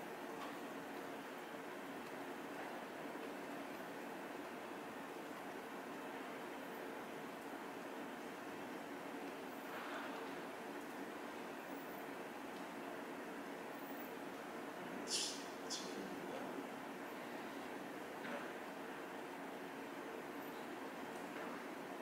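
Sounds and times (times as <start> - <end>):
faint steady hum: 0.0 - 22.0
low hiss: 4.3 - 21.2.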